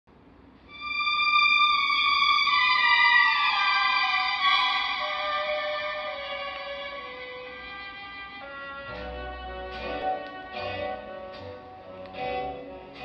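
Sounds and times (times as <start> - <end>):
orchestral music from vinyl record: 0.7 - 13.0.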